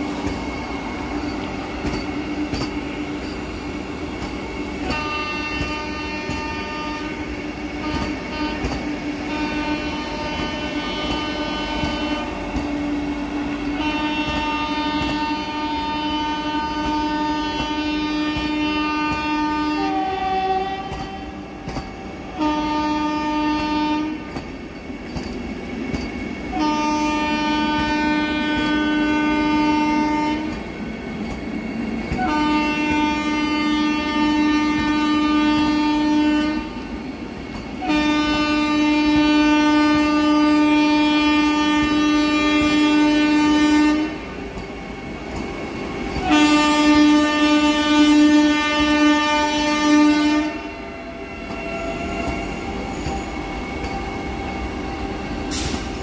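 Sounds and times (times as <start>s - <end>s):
train rumbling: 0.0s - 56.0s
train horn blasts: 4.8s - 12.7s, 13.4s - 24.4s, 26.5s - 30.6s, 32.1s - 37.0s, 37.8s - 44.4s, 46.1s - 56.0s.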